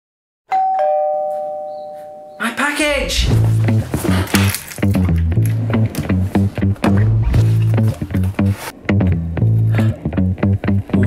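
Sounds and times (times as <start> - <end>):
two-note doorbell chime: 0.5 - 2.4.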